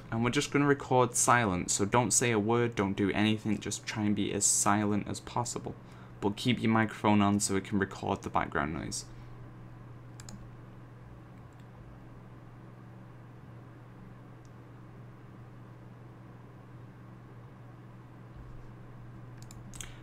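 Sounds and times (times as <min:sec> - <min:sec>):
faint computer hum: 0:00.0 - 0:20.0
mouse click: 0:10.2 - 0:10.4.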